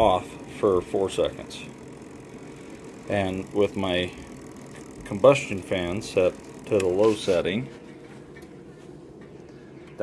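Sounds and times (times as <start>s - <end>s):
stove fans humming: 0.0s - 10.0s.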